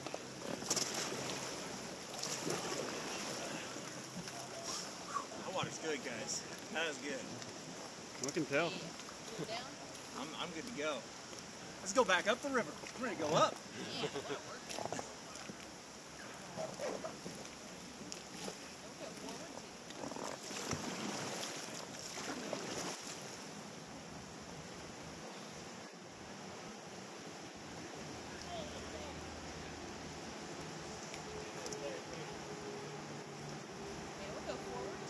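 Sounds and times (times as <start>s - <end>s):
water sloshing around raft: 0.0s - 35.0s.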